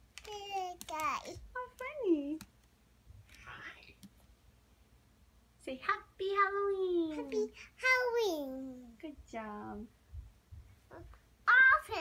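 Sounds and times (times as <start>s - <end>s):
faint breathy whisper: 3.3s - 4.1s.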